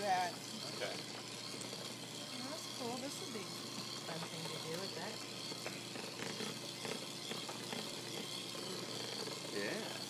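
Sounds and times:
electric hand mixer running: 0:00.0 - 0:10.0.

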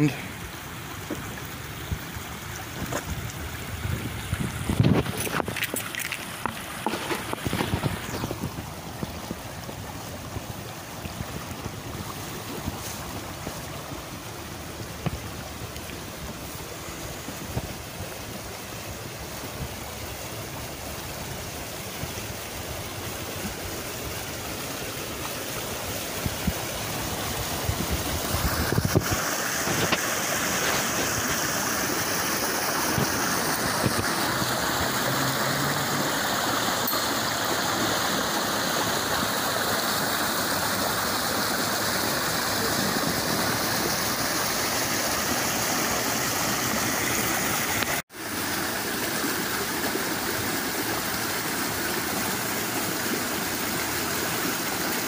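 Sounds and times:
creek rushing over rocks: 0:00.0 - 0:55.0.

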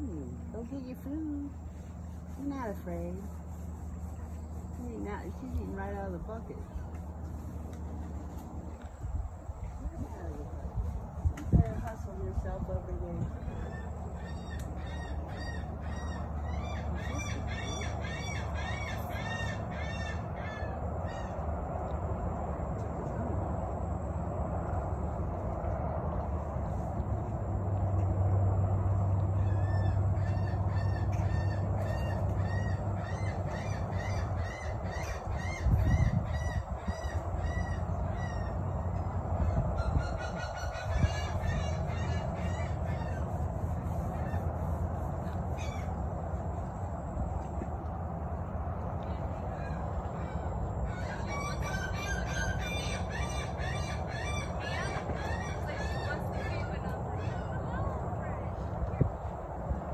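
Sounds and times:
steady low hum: 0:00.0 - 0:59.9
birds calling: 0:13.2 - 0:21.6, 0:29.1 - 0:46.0, 0:49.5 - 0:58.0.

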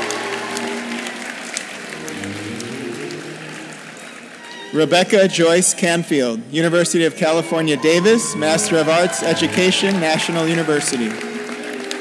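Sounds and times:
audience applauding: 0:00.0 - 0:05.7, 0:07.6 - 0:12.0.

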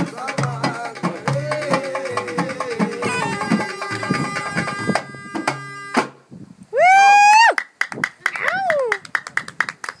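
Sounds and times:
traditional music: 0:00.0 - 0:08.9
person crying out a note: 0:03.0 - 0:04.1
rhythmic hand clapping: 0:07.5 - 0:10.0.

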